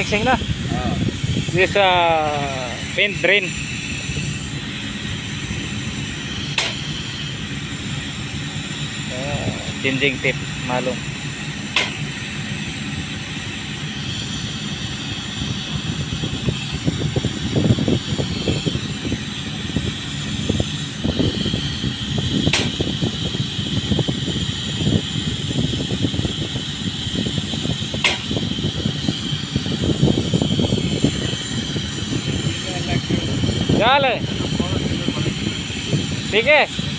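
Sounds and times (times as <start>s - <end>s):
paint spraying rig drone and hiss: 0.0s - 36.9s.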